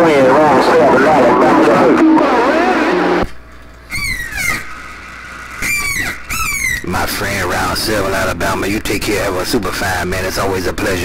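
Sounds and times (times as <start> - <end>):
radio voice: 0.0 - 3.2
radio static hiss: 0.0 - 3.3, 6.9 - 11.0.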